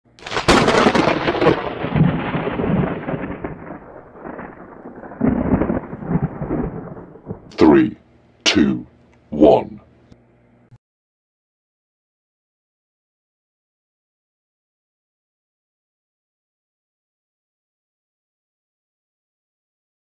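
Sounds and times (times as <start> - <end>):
thunder crash: 0.2 - 7.6.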